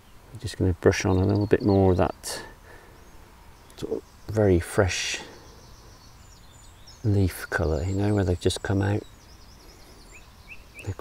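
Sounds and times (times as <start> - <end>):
faint high bird chirps: 0.0 - 11.0.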